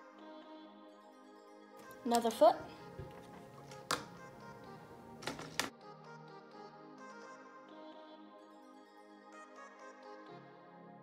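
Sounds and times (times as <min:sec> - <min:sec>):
background music: 0:00.0 - 0:11.0
plastic bricks clicking: 0:05.2 - 0:05.7.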